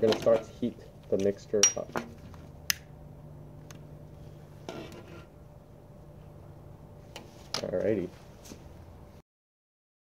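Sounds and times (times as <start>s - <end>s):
low steady hum: 0.0s - 9.2s.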